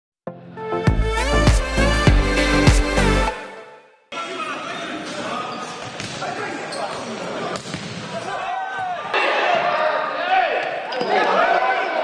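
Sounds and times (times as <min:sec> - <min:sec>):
shoes squeaking on court: 0:04.7 - 0:08.0.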